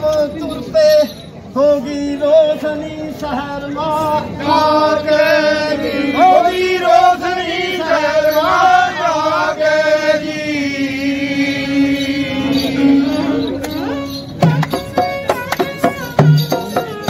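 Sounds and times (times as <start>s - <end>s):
folk chant singing: 0.0s - 17.0s
bowed string instrument: 10.9s - 17.0s.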